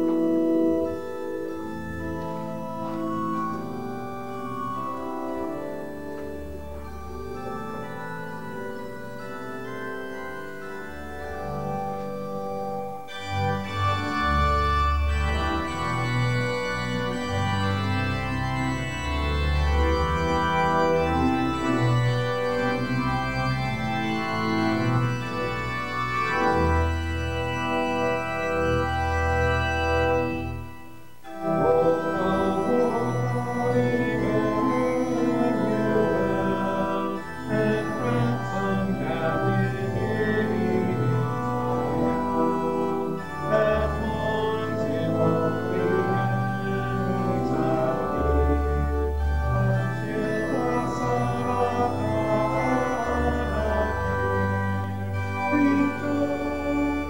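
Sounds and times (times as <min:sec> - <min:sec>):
organ playing a hymn tune: 0:00.0 - 0:57.0.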